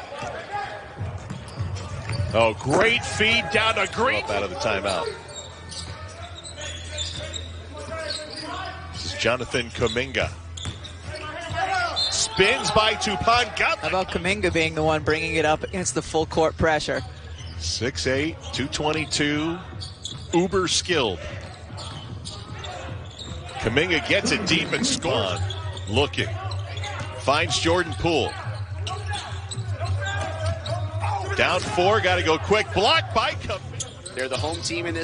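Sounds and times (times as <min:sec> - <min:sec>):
faint players' voices: 0:18.0 - 0:35.0.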